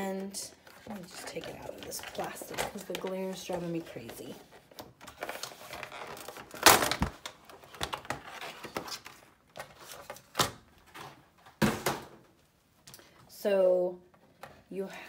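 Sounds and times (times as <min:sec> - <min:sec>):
plastic packaging crinkling: 0:00.6 - 0:11.0.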